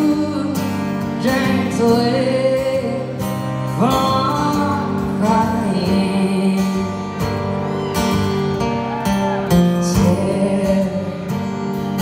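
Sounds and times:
woman singing: 0:00.0 - 0:07.1, 0:09.6 - 0:11.4
acoustic guitar: 0:00.0 - 0:12.0.

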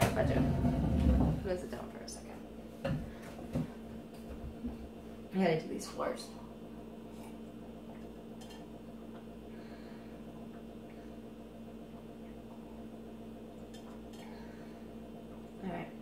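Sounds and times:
household appliance humming: 0:00.0 - 0:16.0.

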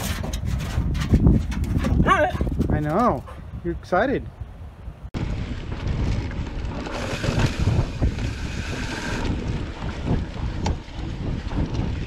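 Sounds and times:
knocks and rattles from bumps: 0:00.0 - 0:03.4
wind buffeting microphone: 0:00.0 - 0:12.0
mountain bike rolling on dirt: 0:05.2 - 0:12.0.

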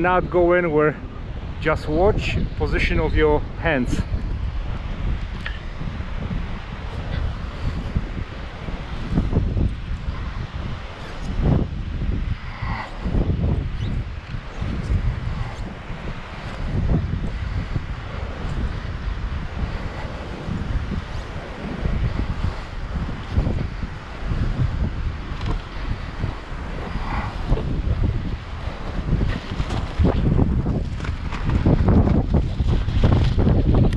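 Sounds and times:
gusty wind buffeting microphone: 0:00.0 - 0:33.9.

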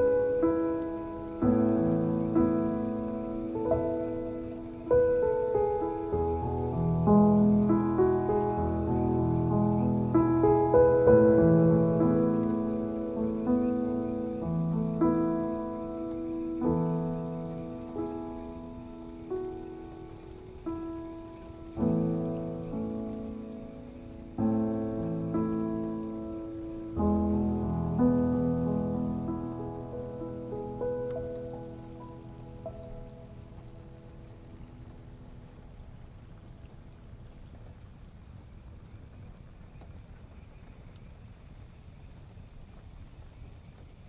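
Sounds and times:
rain pattering: 0:00.0 - 0:44.0
slow gentle piano piece: 0:00.0 - 0:44.0.

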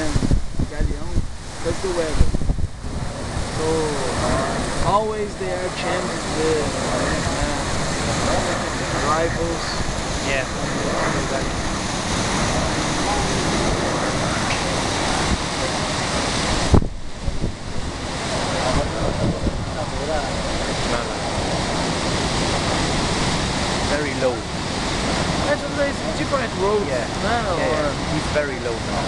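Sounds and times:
wind buffeting microphone: 0:00.0 - 0:29.0
faint voices: 0:03.5 - 0:16.6, 0:17.2 - 0:21.9.

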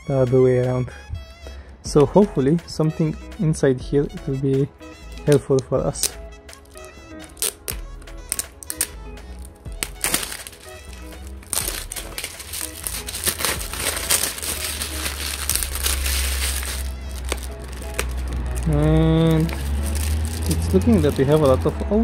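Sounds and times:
background music: 0:00.0 - 0:22.0
crinkly plastic rustling: 0:05.1 - 0:21.8.

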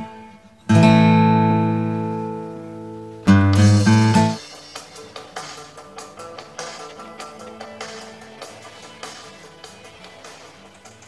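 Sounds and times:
strummed guitar chord: 0:00.0 - 0:08.2.

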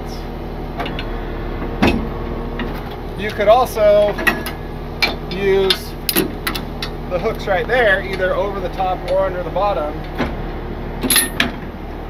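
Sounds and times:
low engine hum: 0:00.0 - 0:12.0
metal chain clanking: 0:04.2 - 0:07.0, 0:11.0 - 0:11.6.

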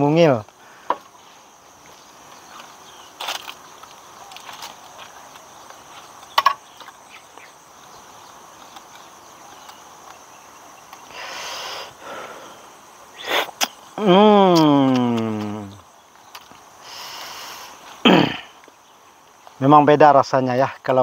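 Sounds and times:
soft rush of noise: 0:00.0 - 0:14.0
insects droning: 0:00.0 - 0:21.0.

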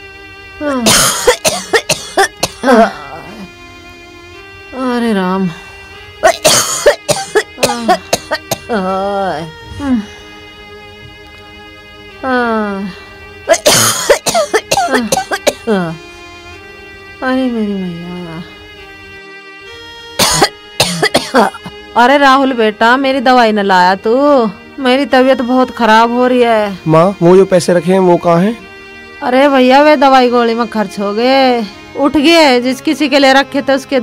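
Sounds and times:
soft background music: 0:00.0 - 0:34.0
woman groaning: 0:00.6 - 0:03.5, 0:06.2 - 0:10.2, 0:13.5 - 0:16.0
woman coughing: 0:00.7 - 0:03.5, 0:06.2 - 0:09.0, 0:13.5 - 0:16.0, 0:20.2 - 0:21.7
groaning breath: 0:02.7 - 0:03.6, 0:09.5 - 0:10.8.

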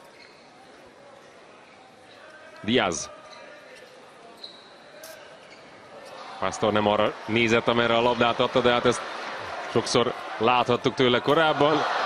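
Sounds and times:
crowd in large hall: 0:00.0 - 0:12.0
short high squeak: 0:04.4 - 0:05.8.

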